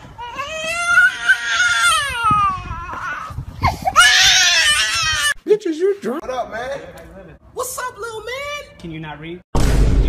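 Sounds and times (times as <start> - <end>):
child crying and screaming: 0.2 - 5.4.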